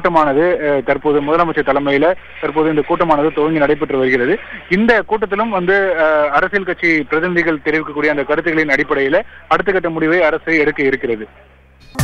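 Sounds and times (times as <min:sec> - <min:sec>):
man talking over telephone: 0:00.0 - 0:11.3.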